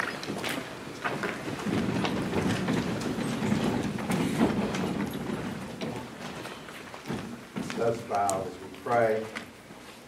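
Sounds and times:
chairs shifting: 0:00.0 - 0:08.3
feet shuffling: 0:00.0 - 0:10.0.

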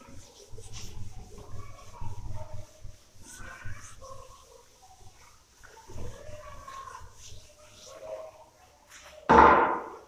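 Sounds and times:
duster squeaking on whiteboard: 0:00.0 - 0:08.4.

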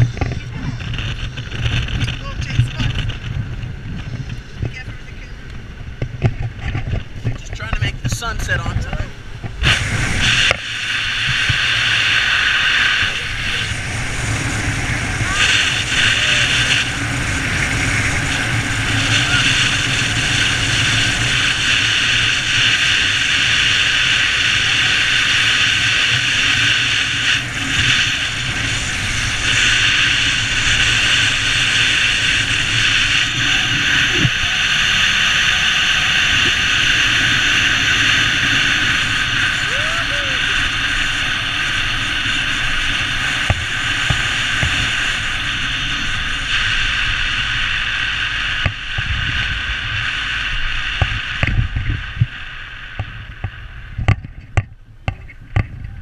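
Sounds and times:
car road and wind noise: 0:00.0 - 0:56.0.

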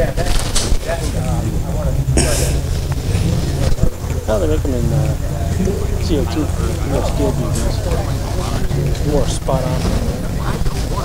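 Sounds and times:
low rumble: 0:00.0 - 0:11.0
people talking: 0:00.0 - 0:11.0.

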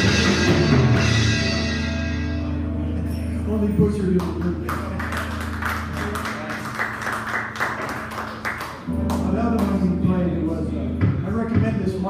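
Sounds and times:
audience applauding: 0:04.2 - 0:09.8.

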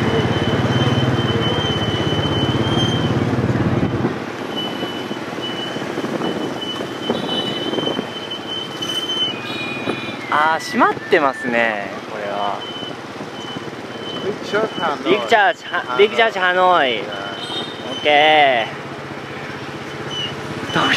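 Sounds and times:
road noise: 0:00.0 - 0:20.9
rushing wind: 0:01.6 - 0:16.1.

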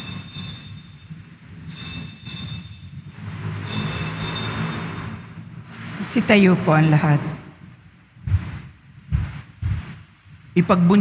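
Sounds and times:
altar bells ringing: 0:00.0 - 0:05.4.

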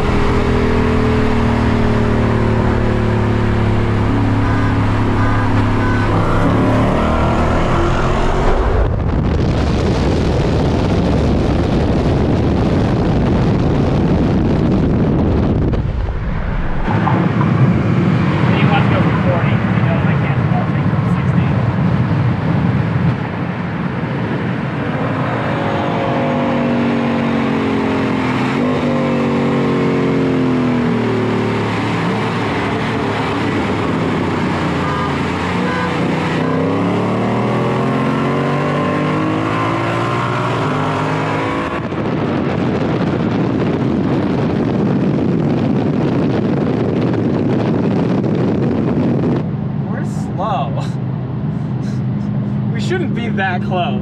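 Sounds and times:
muscle car engines accelerating: 0:00.0 - 0:54.0
wind rushing past car: 0:00.0 - 0:54.0.

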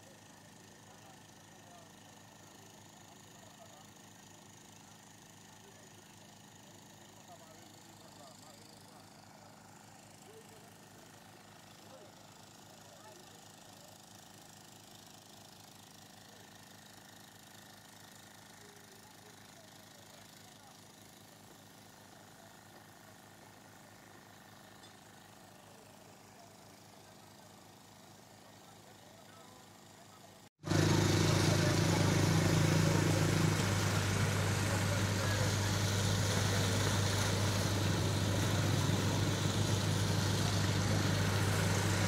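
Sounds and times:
distant people talking: 0:24.3 - 0:42.0.

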